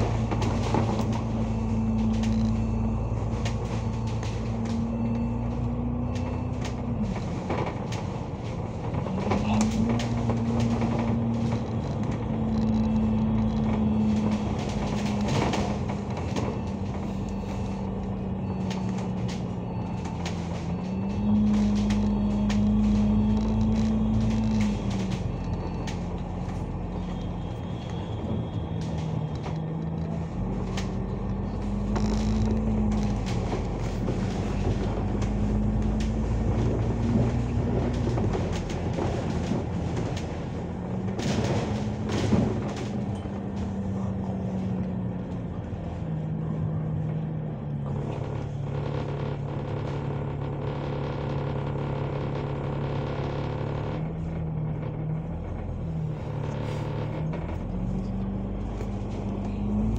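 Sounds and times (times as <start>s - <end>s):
bus drivetrain hum: 0.0s - 59.9s
low road rumble: 0.0s - 59.9s.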